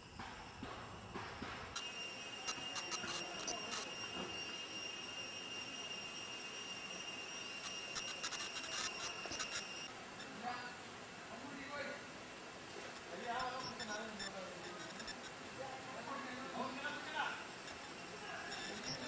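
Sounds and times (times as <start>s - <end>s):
crackling clicks: 1.7s - 4.5s, 7.4s - 10.3s, 12.7s - 15.4s, 17.6s - 19.0s
high-pitched whine: 1.8s - 19.0s.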